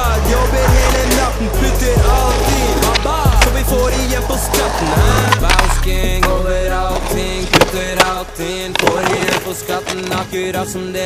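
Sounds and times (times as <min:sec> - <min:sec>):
music track: 0:00.0 - 0:11.0
skateboard wheels rolling on pavement: 0:00.0 - 0:11.0
skateboard popping and landing: 0:02.3 - 0:10.6.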